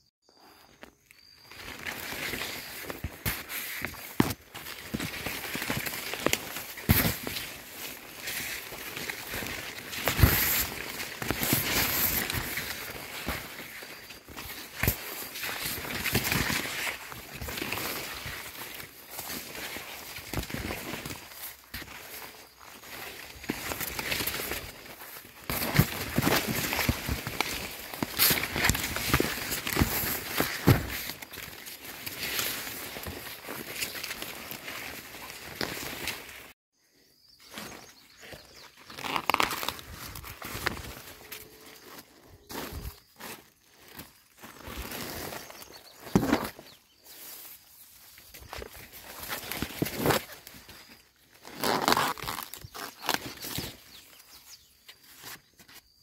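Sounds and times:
corn leaves rustling: 0.4 - 36.6, 37.4 - 56.0
footsteps on soil: 1.4 - 36.6, 37.5 - 52.6.

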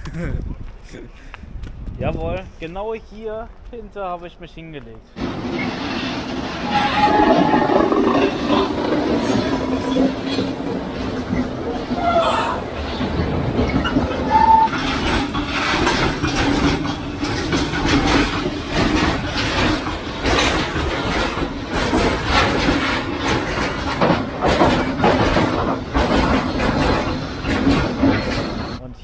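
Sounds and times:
freight train passing: 4.1 - 28.9
wheels clacking over rail joints: 5.2 - 28.8.

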